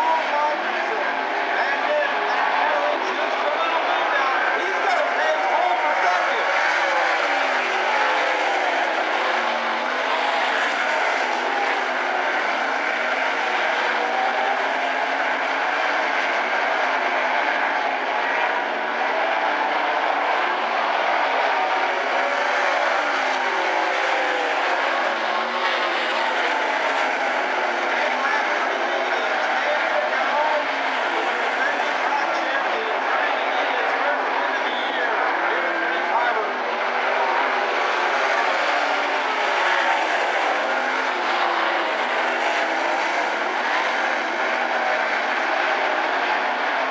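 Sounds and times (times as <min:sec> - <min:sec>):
race car engines revving: 0:00.0 - 0:46.9.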